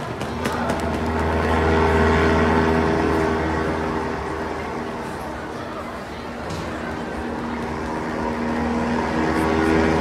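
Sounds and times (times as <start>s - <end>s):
propeller plane engine drone: 0.0s - 10.0s.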